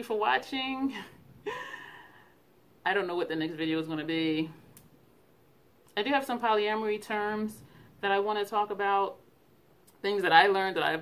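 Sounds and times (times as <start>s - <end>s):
woman's breathy vocal sound: 1.0s - 2.4s.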